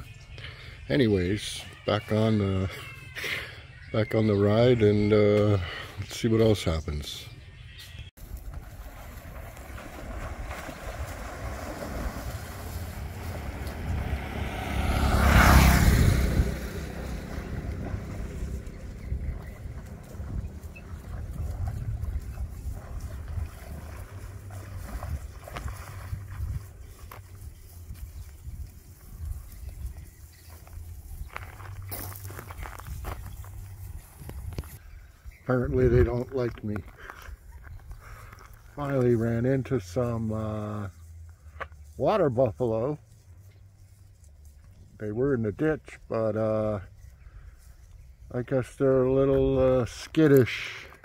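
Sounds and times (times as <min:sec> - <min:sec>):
wind buffeting microphone: 0:08.2 - 0:38.2
motorbike engine running: 0:12.2 - 0:22.8.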